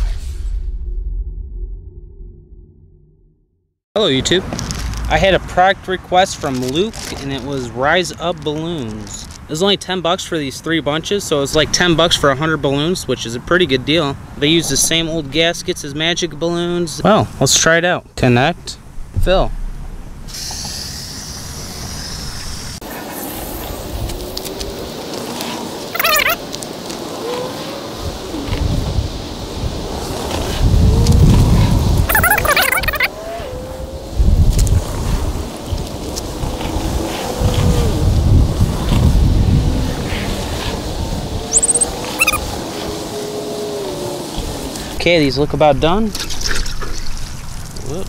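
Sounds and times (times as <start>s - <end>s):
low rumbling: 18.6s - 22.8s
water spraying from hose: 20.3s - 32.1s, 34.8s - 45.0s
brief squeaks: 26.0s - 26.4s, 32.1s - 33.1s, 41.5s - 42.4s.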